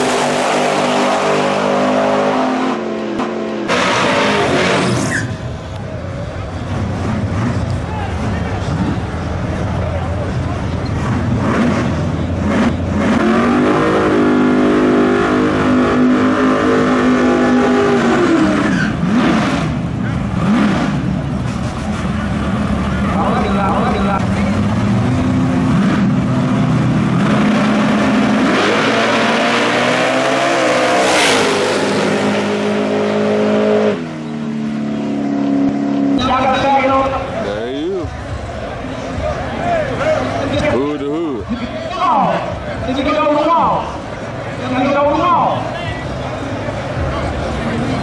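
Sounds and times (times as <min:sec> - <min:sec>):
crowd noise: 0:00.0 - 0:48.0
drag car engines revving: 0:00.0 - 0:48.0.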